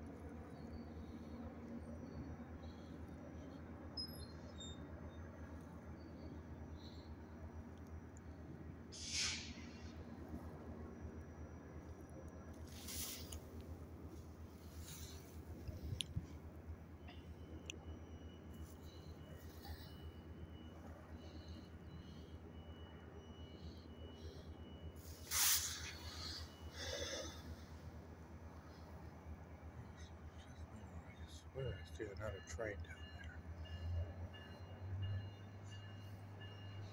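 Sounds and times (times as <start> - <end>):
diesel locomotive idling: 0.0 - 36.9
short hisses: 8.9 - 9.8, 25.2 - 27.4.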